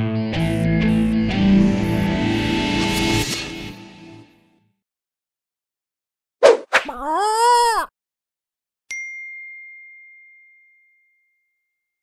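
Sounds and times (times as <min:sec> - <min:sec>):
bell-like ding: 0:08.9 - 0:11.6.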